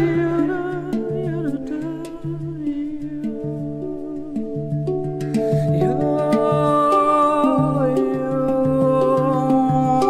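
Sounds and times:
handpan notes ringing: 0:00.0 - 0:10.0.

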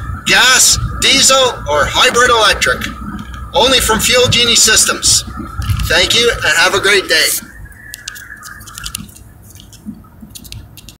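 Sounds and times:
car road rumble: 0:00.0 - 0:11.0
phone handling clicks and rubbing: 0:07.9 - 0:11.0.

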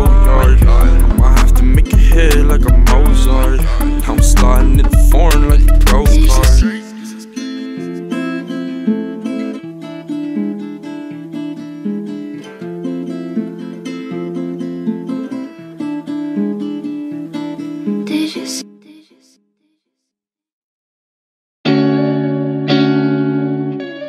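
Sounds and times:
plucked guitar melody: 0:00.0 - 0:18.7, 0:21.7 - 0:24.0.

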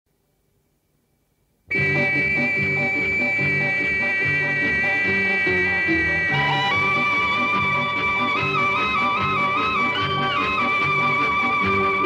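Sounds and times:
instrumental film song prelude: 0:01.7 - 0:12.0.

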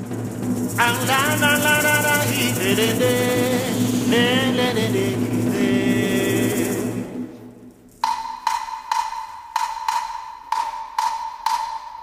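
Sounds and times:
music: 0:00.0 - 0:12.0
wooden percussion clicks: 0:07.9 - 0:12.0.

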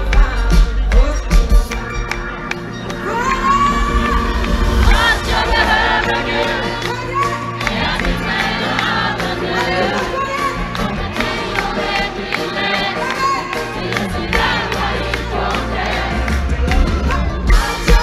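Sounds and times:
crowd singing along: 0:00.0 - 0:18.0
live band playing: 0:00.0 - 0:18.0.

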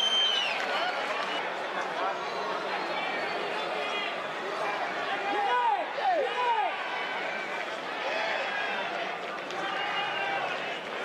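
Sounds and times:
stadium crowd noise: 0:00.0 - 0:11.0
people shouting and calling: 0:04.9 - 0:08.9.

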